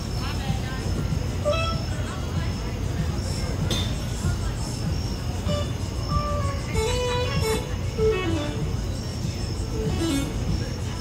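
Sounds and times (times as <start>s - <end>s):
drum and bass beat: 4.3s - 9.0s, 9.6s - 10.8s
sliding lead melody: 6.2s - 8.8s, 9.8s - 10.5s.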